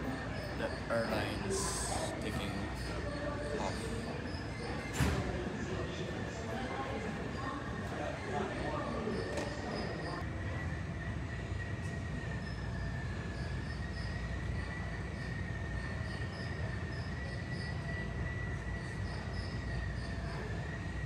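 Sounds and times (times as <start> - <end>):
jet engine whine: 0.0 - 21.0.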